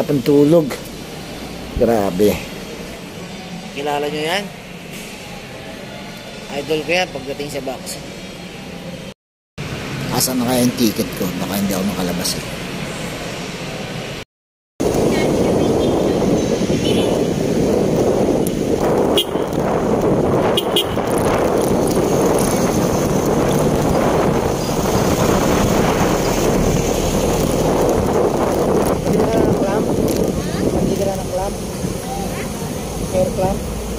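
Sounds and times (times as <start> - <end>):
street traffic: 0.0 - 33.9
wind buffeting microphone: 14.8 - 33.9
motorcycle engine: 15.0 - 32.3.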